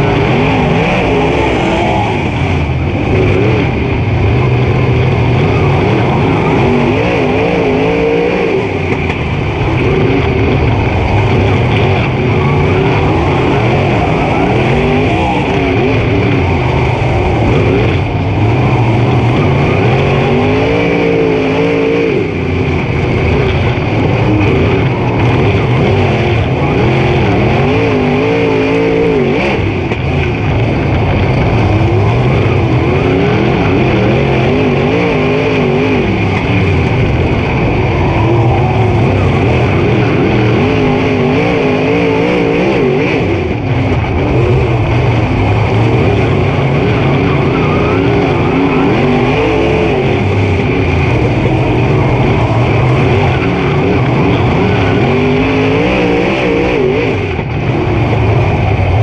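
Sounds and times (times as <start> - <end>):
race car engine revving: 0.0 - 59.0
steady rush of noise: 0.0 - 59.0.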